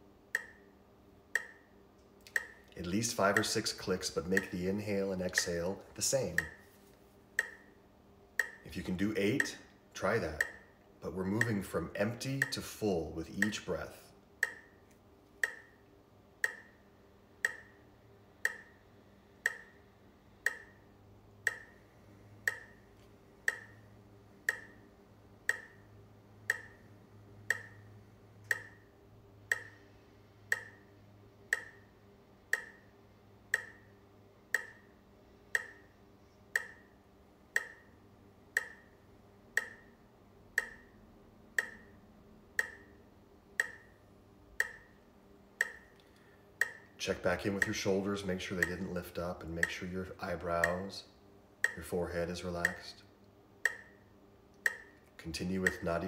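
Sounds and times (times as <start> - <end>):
metronome clicking: 0.3 - 0.7, 1.3 - 6.6, 7.4 - 7.7, 8.4 - 13.8, 14.4 - 14.8, 15.4 - 16.8, 17.4 - 17.8, 18.4 - 19.8, 20.4 - 20.8, 21.4 - 21.8, 22.4 - 22.8, 23.5 - 24.9, 25.5 - 28.9, 29.5 - 30.9, 31.5 - 31.9, 32.5 - 32.9, 33.5 - 34.9, 35.5 - 35.9, 36.5 - 39.0, 39.6 - 40.0, 40.6 - 41.0, 41.6 - 42.0, 42.6 - 43.0, 43.6 - 44.0, 44.6 - 45.0, 45.6 - 51.0, 51.6 - 52.0, 52.6 - 53.0, 53.6 - 56.0.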